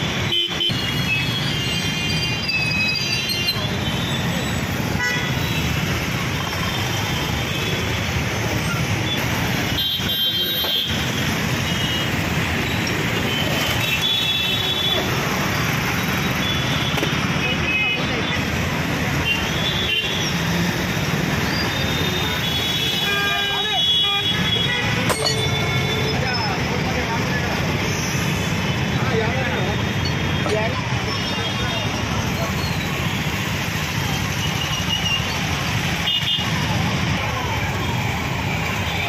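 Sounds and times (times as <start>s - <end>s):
road traffic: 0.0s - 39.0s
vehicle horns tooting: 0.2s - 5.8s, 21.6s - 26.5s
people talking: 10.0s - 10.9s, 25.1s - 28.1s, 28.7s - 33.2s, 36.4s - 39.0s.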